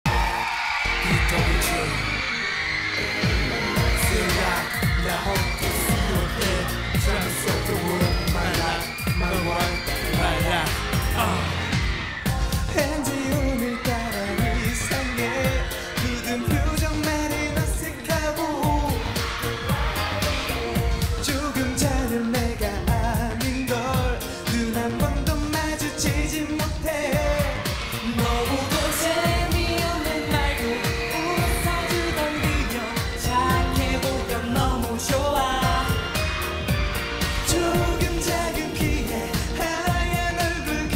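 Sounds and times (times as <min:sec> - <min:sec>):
dance-pop backing track: 0:00.0 - 0:40.9
male vocalist singing: 0:00.9 - 0:02.3, 0:03.0 - 0:11.9, 0:12.5 - 0:40.9.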